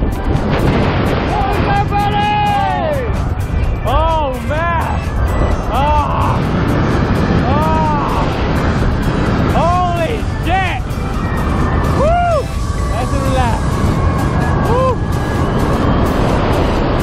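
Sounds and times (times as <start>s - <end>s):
wind noise on microphone: 0.0s - 17.0s
background music with singing: 2.4s - 9.6s.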